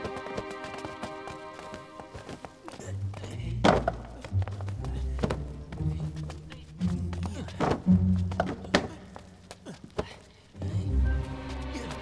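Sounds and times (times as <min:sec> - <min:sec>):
background music with low notes: 0:00.0 - 0:09.7, 0:10.5 - 0:12.0.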